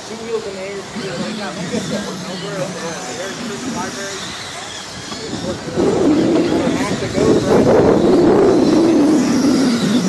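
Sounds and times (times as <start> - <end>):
rc race car motors whining: 0.0 - 10.0.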